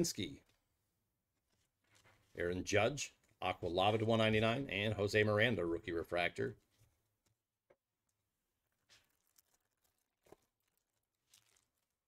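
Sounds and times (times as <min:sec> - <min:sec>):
foil wrapper tearing: 0:08.8 - 0:12.0.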